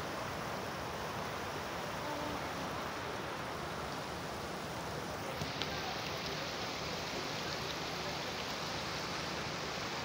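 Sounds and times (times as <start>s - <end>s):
floodwater rushing through a drain: 0.0s - 10.0s.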